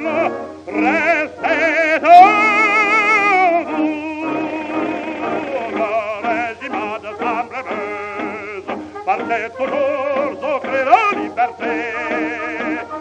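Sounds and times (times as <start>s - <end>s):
operatic tenor singing: 0.0s - 13.0s
orchestral accompaniment: 0.0s - 13.0s.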